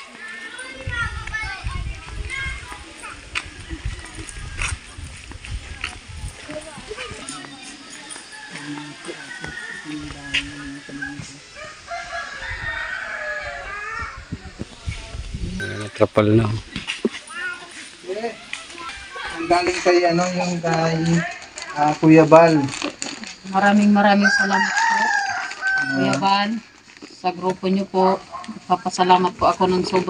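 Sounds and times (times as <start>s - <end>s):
faint background voices: 0.0s - 27.0s
footsteps on concrete: 0.8s - 11.4s, 16.7s - 28.7s.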